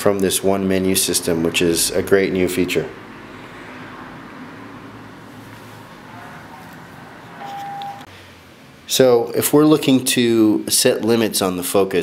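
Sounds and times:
electronic beep: 7.4 - 8.1.

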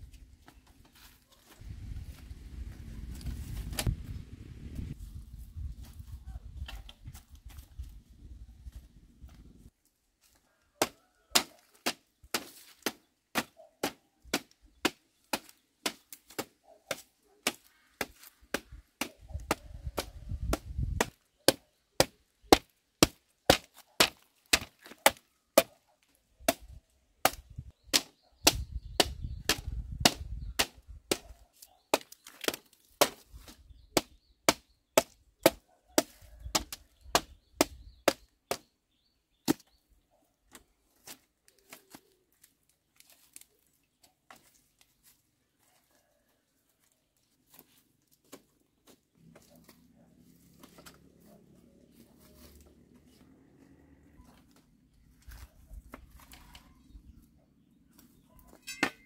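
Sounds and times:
bamboo striking bamboo slats: 10.8 - 25.8, 26.4 - 31.3, 31.9 - 38.7.

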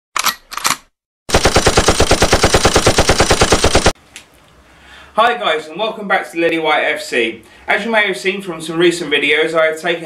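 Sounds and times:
automatic gunfire burst: 1.3 - 4.0.

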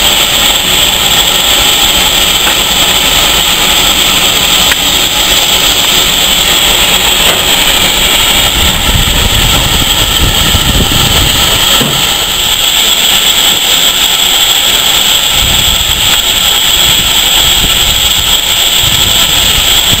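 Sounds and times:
steam locomotive venting steam: 0.0 - 20.0.

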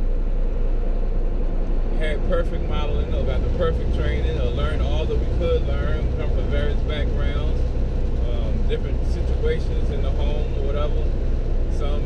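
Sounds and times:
truck engine and road rumble: 0.0 - 12.0.

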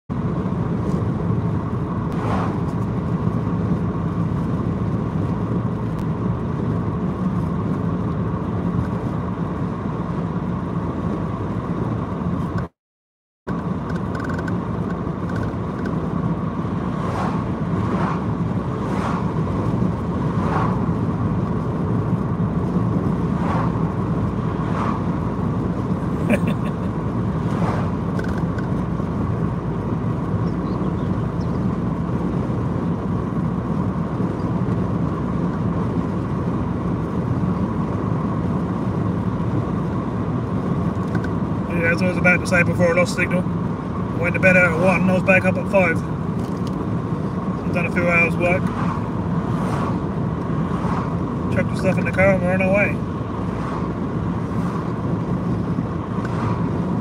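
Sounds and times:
car road and engine noise: 0.1 - 12.8, 13.4 - 57.0.

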